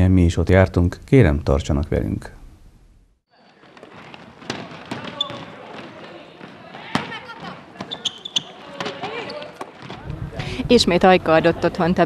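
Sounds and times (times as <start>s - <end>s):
basketball bouncing on wooden court: 3.8s - 10.0s.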